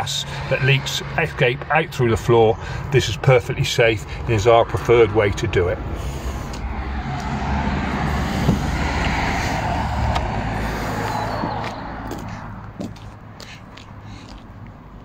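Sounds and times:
motor vehicle passing by: 0:05.6 - 0:15.0.

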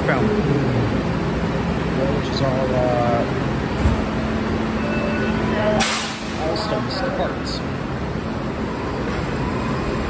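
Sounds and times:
train hum: 0:00.0 - 0:10.0.

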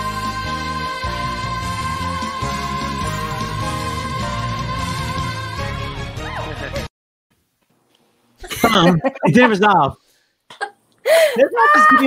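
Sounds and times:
pop backing track: 0:00.0 - 0:06.9.

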